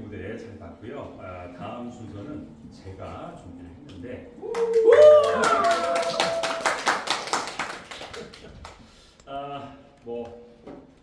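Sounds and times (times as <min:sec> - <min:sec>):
audience clapping: 0:04.5 - 0:09.1.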